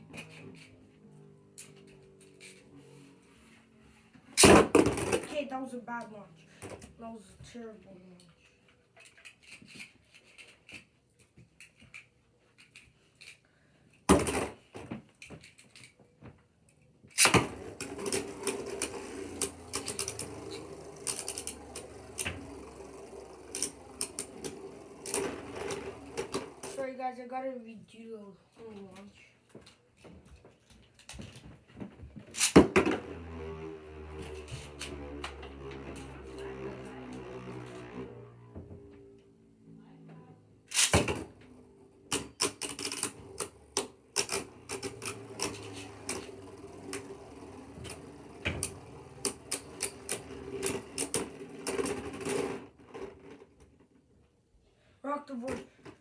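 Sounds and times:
spinning tops whirring: 0:17.2 - 0:26.8, 0:32.4 - 0:38.4, 0:41.7 - 0:53.4.

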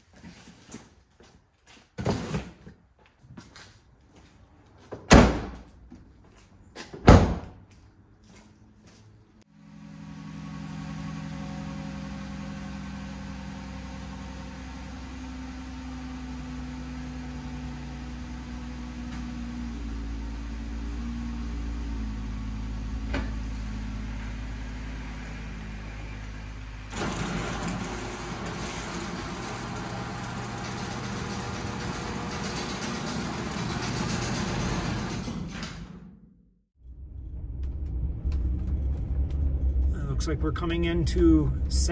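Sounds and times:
van doors slamming: 0:05.1 - 0:05.6, 0:07.0 - 0:07.6.

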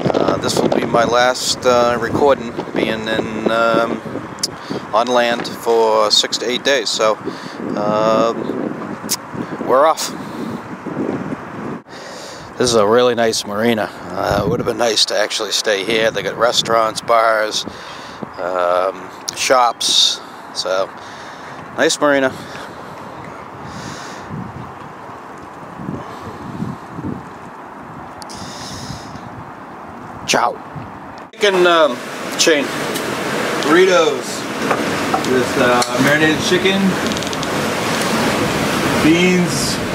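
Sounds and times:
wind buffeting microphone: 0:00.0 - 0:39.9.

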